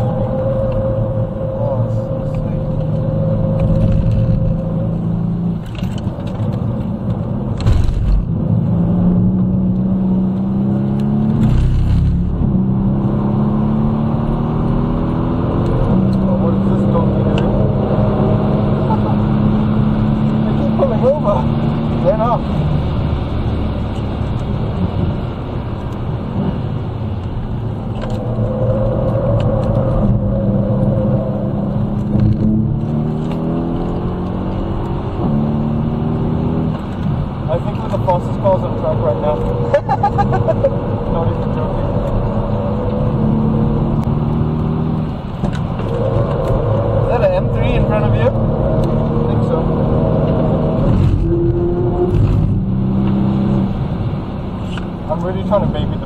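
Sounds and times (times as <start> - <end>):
car engine revving through gears: 0.0 - 56.0.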